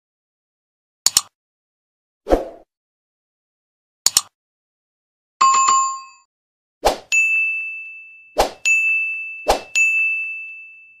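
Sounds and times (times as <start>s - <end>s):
bright bell-like ding: 7.1s - 11.0s.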